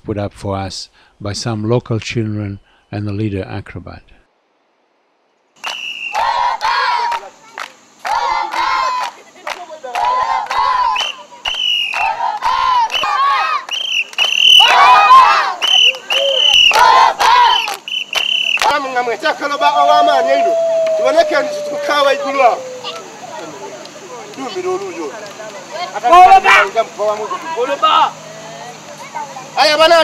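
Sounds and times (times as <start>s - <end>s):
children shouting a rhythmic chant: 6.2s - 9.2s, 10.0s - 11.0s, 12.0s - 13.7s, 14.6s - 17.8s, 19.8s - 23.6s.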